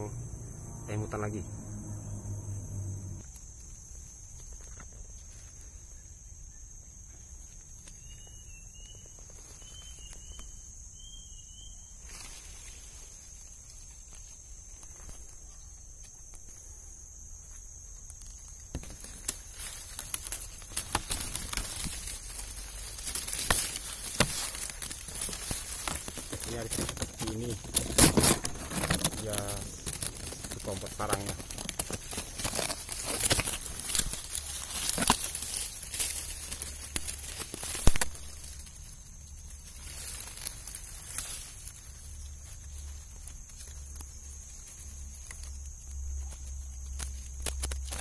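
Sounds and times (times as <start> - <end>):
insects droning: 0.0 - 48.0
footsteps through dry leaves: 19.4 - 38.9, 39.5 - 43.8.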